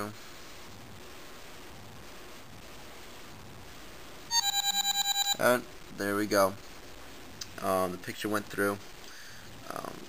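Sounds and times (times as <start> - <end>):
faint room noise: 0.0 - 10.0
phone alert pulsing beeps: 4.3 - 5.4.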